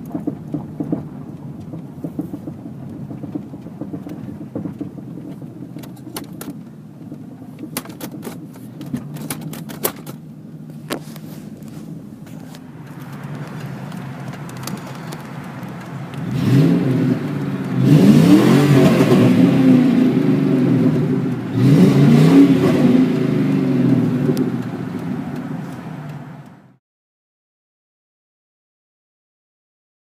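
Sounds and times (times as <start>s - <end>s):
car engine idling and revving: 0.0s - 26.8s.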